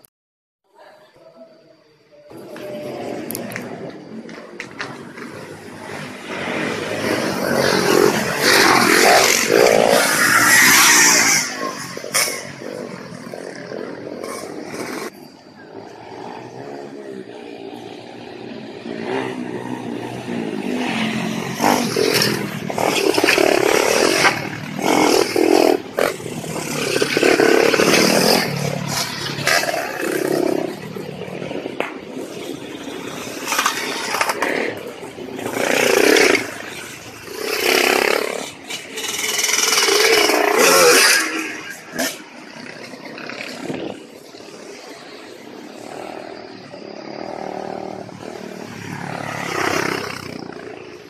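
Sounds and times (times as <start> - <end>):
motorcycle engines revving: 2.2 - 51.0.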